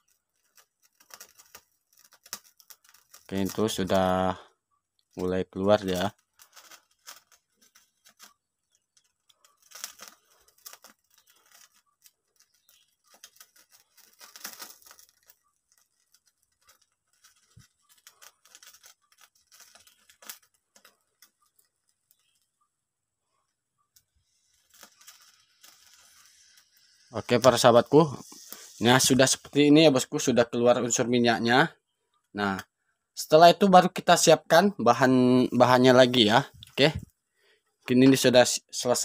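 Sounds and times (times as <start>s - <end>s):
meat crackling on a grill: 0.0s - 22.4s, 24.2s - 29.7s.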